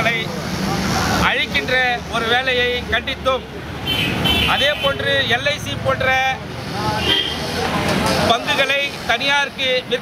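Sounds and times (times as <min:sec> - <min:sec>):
road traffic rumble: 0:00.0 - 0:10.0
man speaking into microphones: 0:04.4 - 0:07.1, 0:08.2 - 0:10.0.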